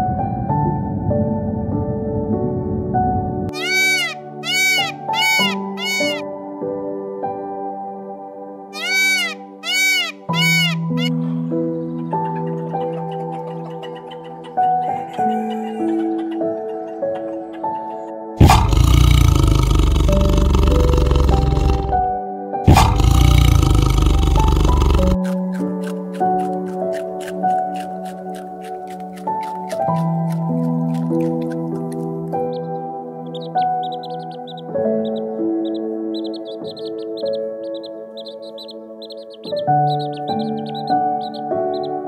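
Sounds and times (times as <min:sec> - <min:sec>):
soft ambient piano music: 0:00.0 - 0:18.5, 0:19.4 - 0:42.0
chirping tones: 0:03.5 - 0:06.2, 0:08.8 - 0:22.1, 0:22.7 - 0:30.4, 0:32.4 - 0:42.0
tiger roaring: 0:18.4 - 0:22.1, 0:22.7 - 0:25.2.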